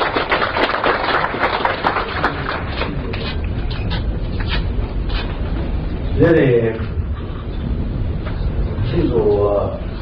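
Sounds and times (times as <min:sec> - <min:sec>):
audience applauding: 0:00.0 - 0:03.6.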